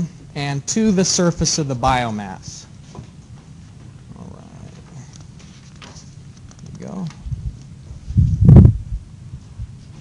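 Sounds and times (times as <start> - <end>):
low rumble: 7.2 - 9.8.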